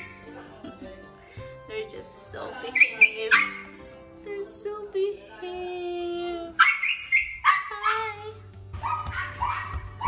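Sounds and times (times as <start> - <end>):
dog yelping: 2.8 - 3.7, 6.6 - 8.1, 8.8 - 10.0.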